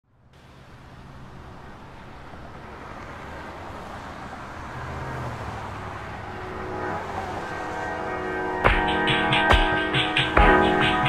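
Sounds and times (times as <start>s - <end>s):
car engine and tyre noise: 0.0s - 11.0s.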